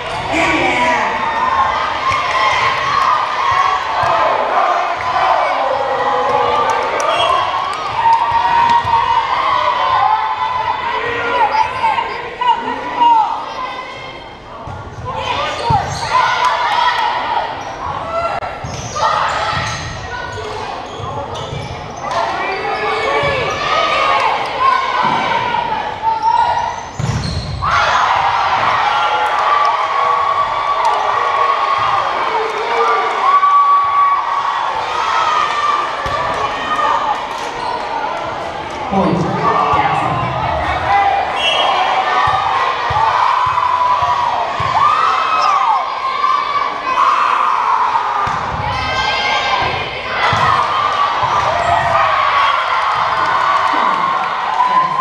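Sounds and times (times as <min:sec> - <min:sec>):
echoing voices of players: 0:00.0 - 0:08.8, 0:38.2 - 0:44.9, 0:53.1 - 0:55.0
volleyball hits: 0:48.2 - 0:48.9, 0:49.6 - 0:52.1.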